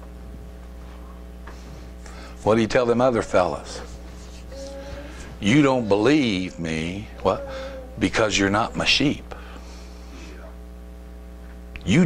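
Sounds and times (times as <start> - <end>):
electrical mains hum: 0.0 - 12.0
man speaking: 2.4 - 4.0, 5.4 - 9.3.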